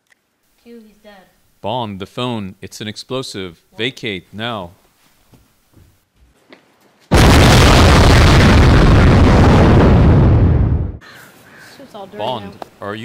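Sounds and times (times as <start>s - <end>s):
deep heavy explosion blast: 7.1s - 11.0s.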